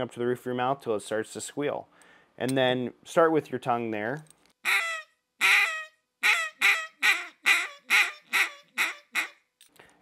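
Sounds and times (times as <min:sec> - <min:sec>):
duck call squealing quacks: 0:04.6 - 0:09.4.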